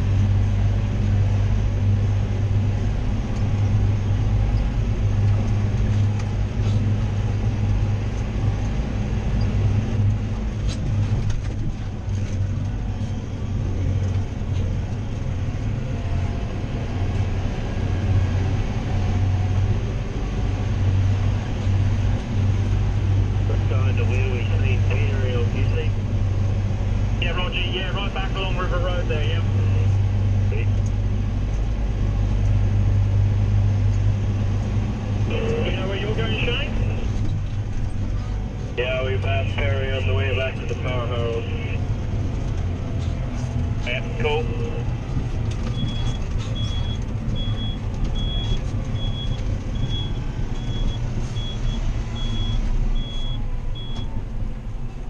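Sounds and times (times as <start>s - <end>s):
tractor diesel engine droning: 0.0s - 55.0s.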